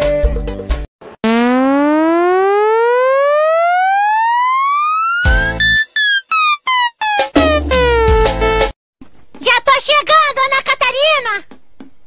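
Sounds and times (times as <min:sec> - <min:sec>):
buzzy tone rising in pitch: 0:01.2 - 0:08.5.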